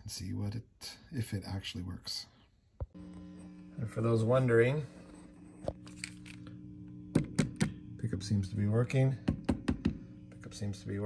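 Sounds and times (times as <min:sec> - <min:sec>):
guitar amplifier hum: 0:02.9 - 0:11.0.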